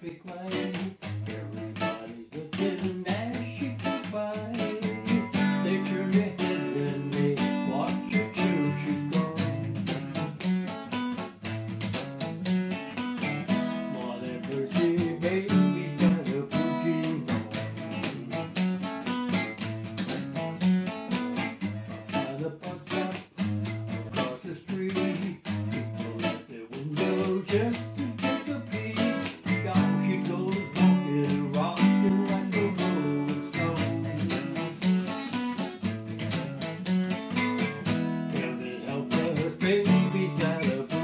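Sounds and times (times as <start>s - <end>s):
acoustic guitar strumming: 0.0s - 41.0s.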